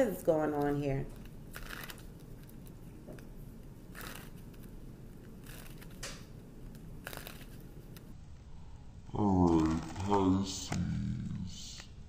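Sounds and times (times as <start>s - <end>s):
low steady hum: 0.0s - 12.0s
cards shuffling: 0.6s - 8.1s, 9.4s - 10.8s.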